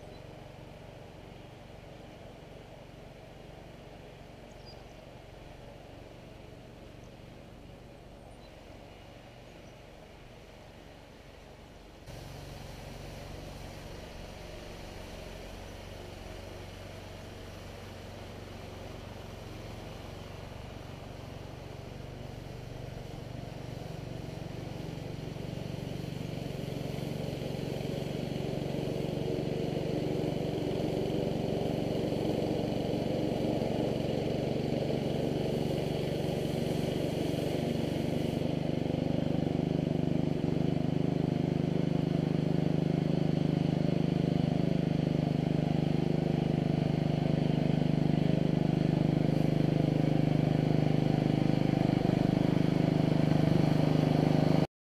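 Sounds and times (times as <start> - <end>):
power sweeper engine running: 12.1 - 54.7.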